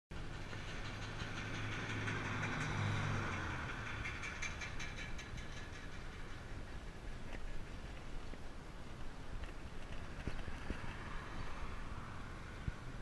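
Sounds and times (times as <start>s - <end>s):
vehicle passing on road: 0.1s - 13.0s.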